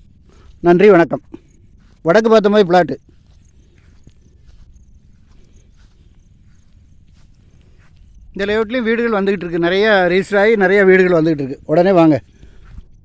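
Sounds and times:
faint high-pitched tone: 0.0 - 12.2
footsteps through grass: 0.0 - 13.0
man speaking: 0.6 - 1.4, 2.0 - 3.1, 8.4 - 12.2.

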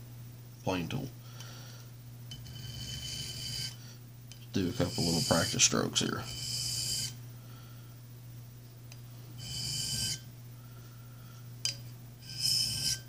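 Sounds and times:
steel scraping on sharpening stone: 2.3 - 3.8, 4.6 - 7.2, 9.4 - 10.3, 12.2 - 13.0.

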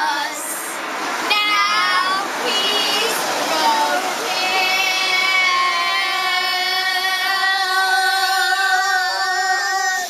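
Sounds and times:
children singing a long note: 0.0 - 10.0.

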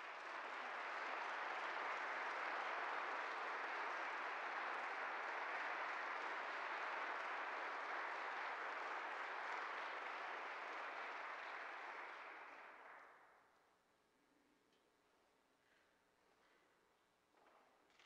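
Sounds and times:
audience applauding: 0.0 - 13.2.

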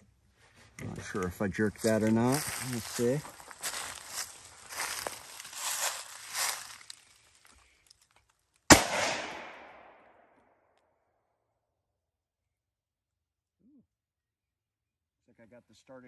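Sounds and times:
rifle shot with echo: 8.7 - 10.3.

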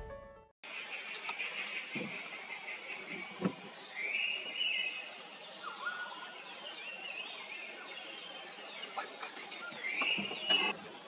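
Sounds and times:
birds calling: 0.7 - 11.0
high insect drone: 0.7 - 11.0.

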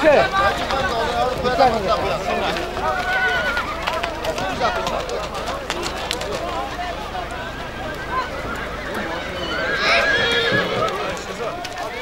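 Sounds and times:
crowd chatter: 0.0 - 12.0
horse whinnying: 7.1 - 11.6.

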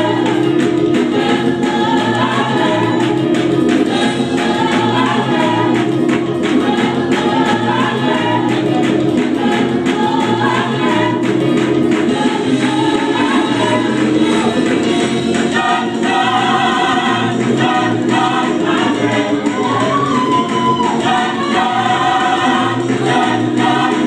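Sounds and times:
gospel choir singing: 0.0 - 24.0
repeating bass figure: 0.0 - 24.0.

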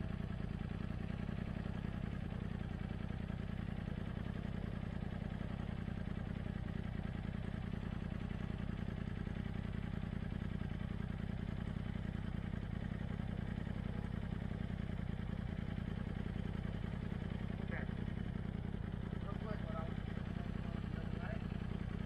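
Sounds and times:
engine idling: 0.0 - 22.0.

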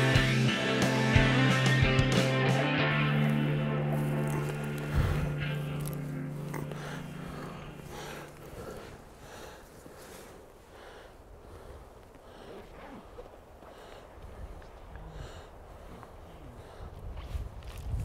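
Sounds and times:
rock music with guitar: 0.0 - 8.0.

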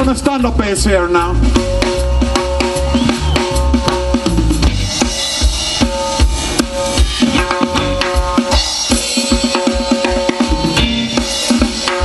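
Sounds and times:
upright double bass: 0.0 - 5.0
drum kit beat: 0.0 - 12.0
electric guitar notes: 1.2 - 9.1, 9.8 - 12.0.

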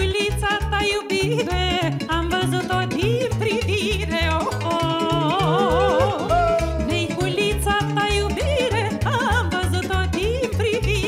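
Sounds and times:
live folk band music: 0.0 - 11.0.

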